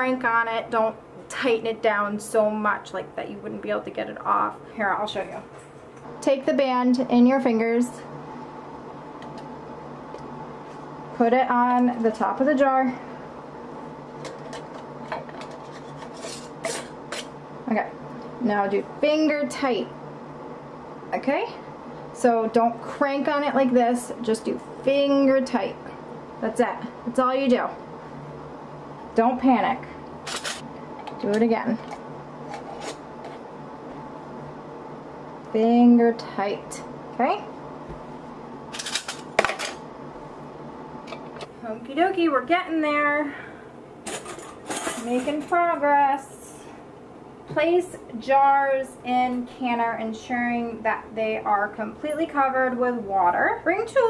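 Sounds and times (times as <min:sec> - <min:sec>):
metal band scraping on jar threads: 0:15.5 - 0:17.4.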